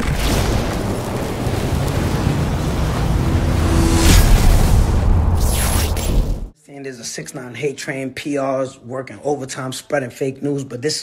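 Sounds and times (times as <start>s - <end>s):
deep cinematic rumble: 1.1s - 6.5s.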